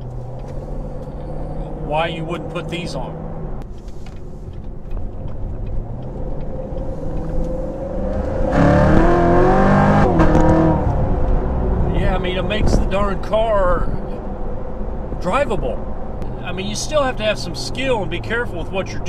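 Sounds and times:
car engine accelerating: 0:00.0 - 0:15.2.

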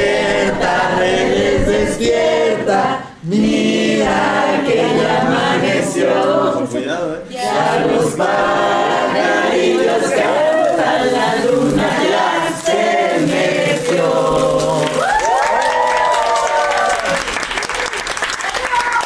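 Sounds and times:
group singing unaccompanied: 0:00.0 - 0:15.8.

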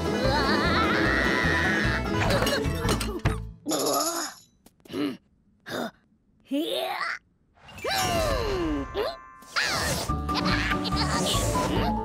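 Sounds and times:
upbeat cartoon music: 0:00.0 - 0:03.6, 0:09.0 - 0:12.0.

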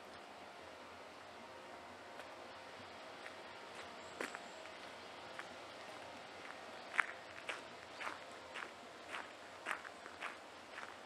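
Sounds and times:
footsteps walking: 0:03.2 - 0:11.0.

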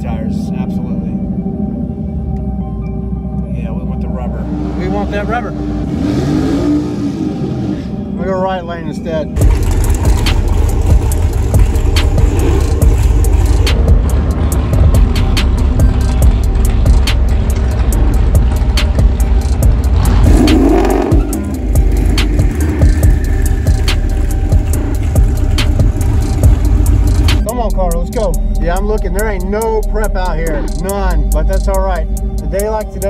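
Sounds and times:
car engine low rumble: 0:00.0 - 0:33.0
music: 0:00.0 - 0:33.0.

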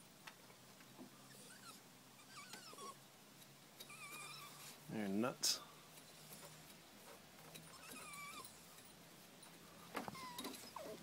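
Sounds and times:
dog whining: 0:01.2 - 0:03.0, 0:03.8 - 0:04.8, 0:07.6 - 0:08.9, 0:10.0 - 0:11.0.

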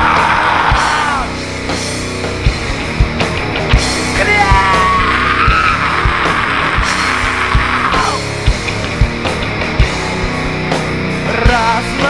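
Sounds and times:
heavy rock band playing: 0:00.0 - 0:12.0
harsh high sustained tone: 0:03.9 - 0:08.5.

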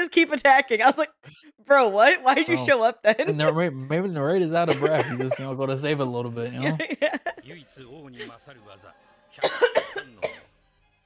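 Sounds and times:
person speaking quietly: 0:02.4 - 0:04.0, 0:04.6 - 0:06.8
person coughing harshly: 0:04.6 - 0:05.7, 0:09.4 - 0:10.4.

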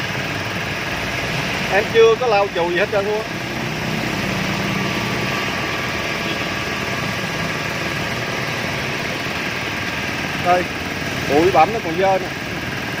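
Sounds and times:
air compressor running: 0:00.0 - 0:13.0.

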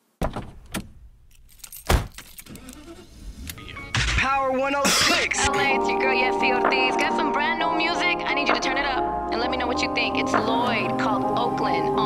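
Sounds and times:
loud thump: 0:00.2 - 0:01.0.

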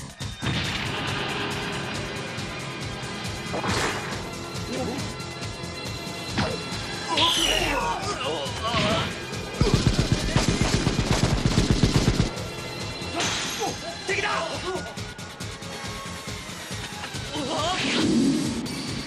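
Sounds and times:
background music: 0:00.0 - 0:19.0
automatic gunfire: 0:09.6 - 0:12.4.

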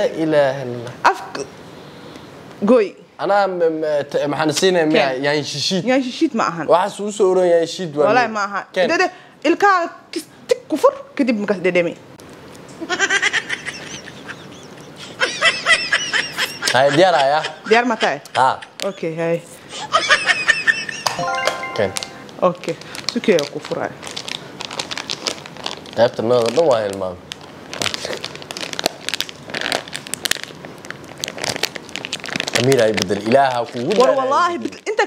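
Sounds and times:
plastic snack packet crinkling: 0:22.8 - 0:34.8.

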